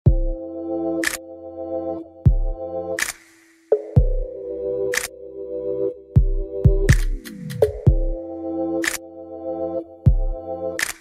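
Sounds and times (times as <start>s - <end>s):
deep kick drum: 0.0s - 0.4s, 2.3s - 2.6s, 4.0s - 4.3s, 6.2s - 8.2s, 10.1s - 10.4s
keyboard chords: 0.0s - 11.0s
sharp clap: 3.0s - 3.5s, 6.9s - 7.9s, 10.8s - 11.0s.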